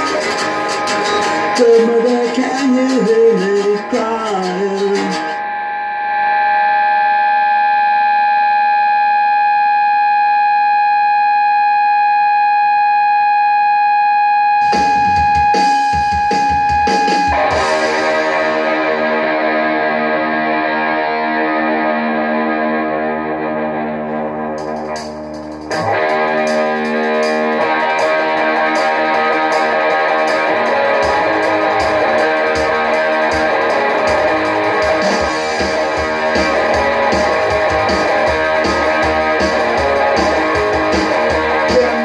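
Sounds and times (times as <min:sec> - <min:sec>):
guitar pick scratches: 0:00.0 - 0:05.4
distorted electric guitar note: 0:00.0 - 0:13.5, 0:14.5 - 0:42.0
guitar chord ringing: 0:00.0 - 0:42.0.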